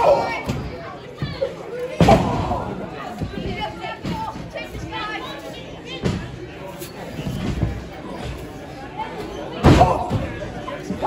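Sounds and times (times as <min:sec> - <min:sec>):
low crowd chatter: 0:00.0 - 0:11.0.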